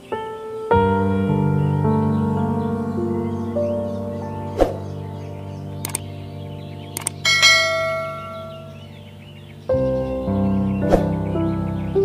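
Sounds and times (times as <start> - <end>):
soft background music: 0.0 - 12.0
short click: 7.0 - 7.2.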